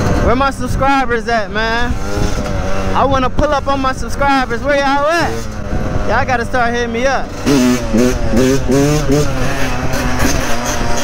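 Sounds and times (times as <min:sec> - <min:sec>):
dirt bike engine running: 0:00.0 - 0:11.0.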